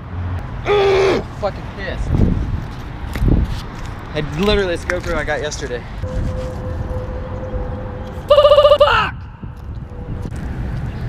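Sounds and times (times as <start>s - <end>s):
electronic beeper warbling trill: 6.1s - 8.8s.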